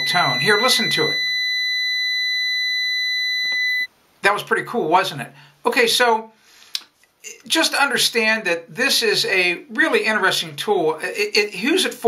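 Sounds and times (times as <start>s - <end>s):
multimeter continuity beep: 0.0s - 3.9s.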